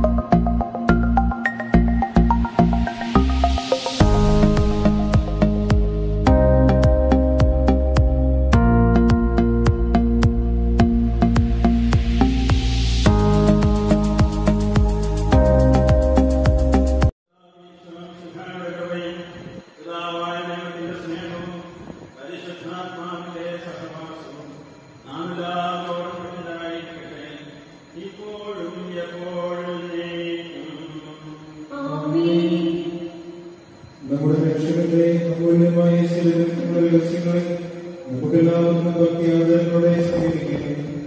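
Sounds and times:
music: 0:00.0 - 0:17.1.

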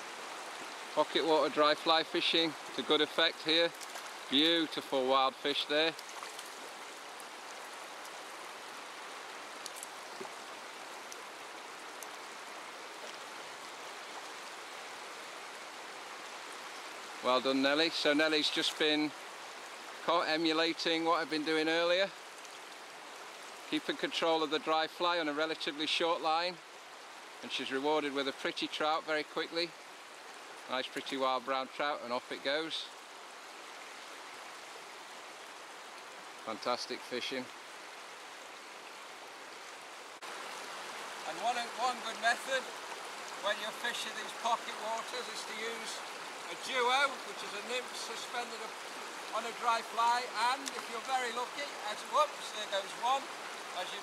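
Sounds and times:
river rushing over stones: 0:00.0 - 0:54.0
faint ticks: 0:09.6 - 0:10.4, 0:11.0 - 0:11.3.

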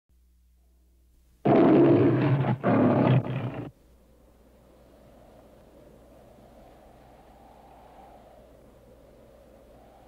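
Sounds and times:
loud deep roar: 0:01.4 - 0:03.7.

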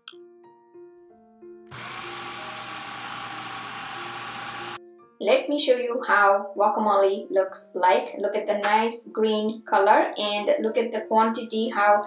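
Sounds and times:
food processor running: 0:01.7 - 0:04.8.

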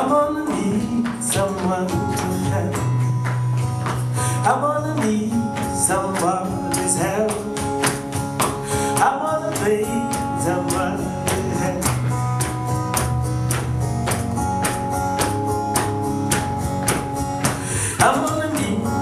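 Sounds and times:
person singing: 0:00.0 - 0:03.2, 0:04.1 - 0:12.5, 0:17.4 - 0:19.0
cajon hits: 0:00.0 - 0:19.0
strummed acoustic guitar: 0:00.0 - 0:19.0.

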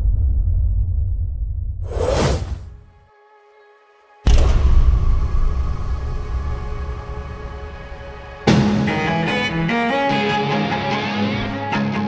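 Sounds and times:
deep low rumble: 0:00.0 - 0:02.0, 0:04.3 - 0:08.5
whoosh: 0:01.8 - 0:02.8.

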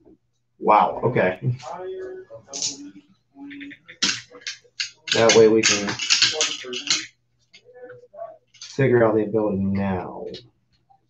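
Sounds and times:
cards and dice handled: 0:03.9 - 0:07.1.

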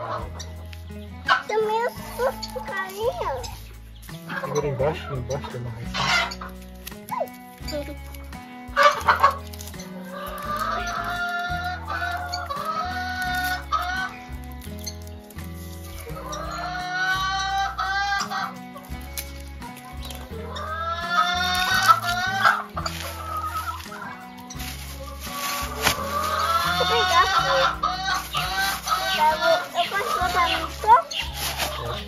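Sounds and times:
background music with bass line: 0:00.0 - 0:32.0
chickens clucking: 0:00.0 - 0:32.0.

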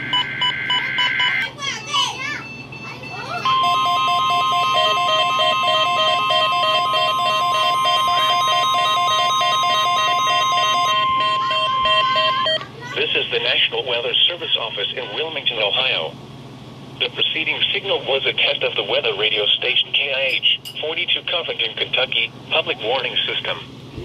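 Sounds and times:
rapid alert beeps: 0:00.0 - 0:01.4, 0:02.4 - 0:12.6
steady warning alarm tone: 0:00.0 - 0:01.5, 0:02.3 - 0:14.9
short beeps: 0:02.4 - 0:12.6.

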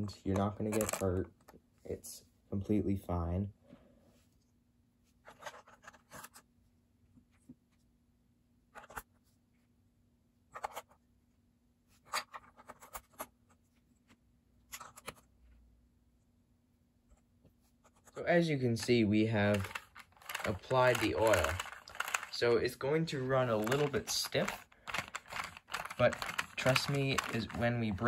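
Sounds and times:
plastic bricks clicking and scraping: 0:00.3 - 0:01.3, 0:18.8 - 0:28.0.

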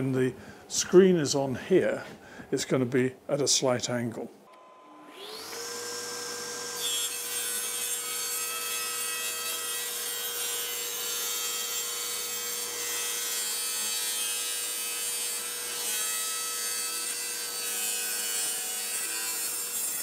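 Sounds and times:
table saw cutting wood: 0:04.6 - 0:20.0.

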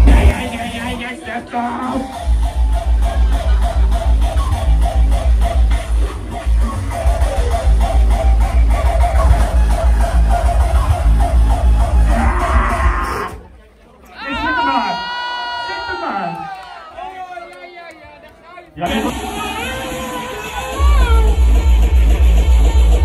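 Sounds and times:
heavy kick drum: 0:00.0 - 0:00.4, 0:20.8 - 0:23.0
electronic dance music: 0:00.0 - 0:13.4, 0:18.8 - 0:23.0.

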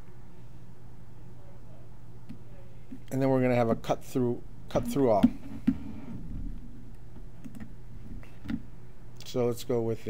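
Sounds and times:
computer keyboard and mouse clicks: 0:07.4 - 0:07.7.

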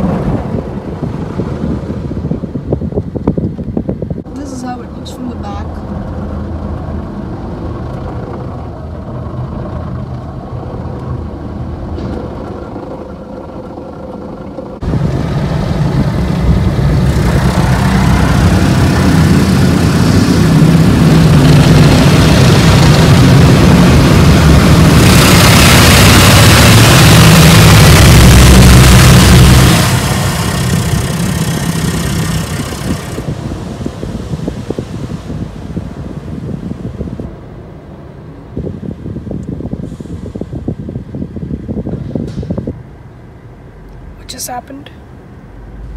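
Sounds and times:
low machinery hum: 0:00.0 - 0:45.9.

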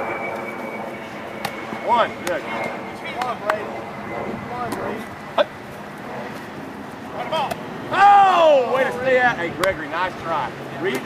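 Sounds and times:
loud drawn-out shout: 0:07.9 - 0:09.0
people calling out: 0:07.9 - 0:09.0.

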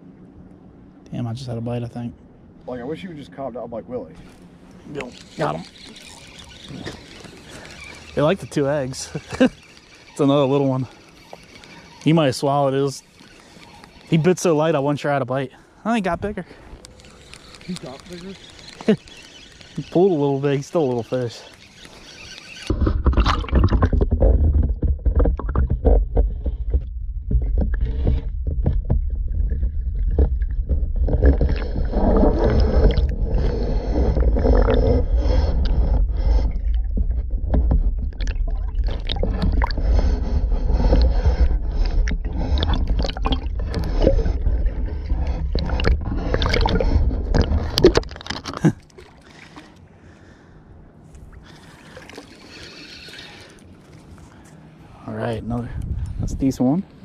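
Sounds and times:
muffled underwater rumble: 0:22.7 - 0:48.6.

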